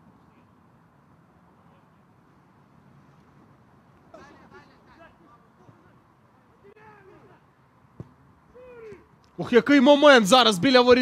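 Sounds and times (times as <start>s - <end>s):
distant players shouting: 4.0s - 11.0s.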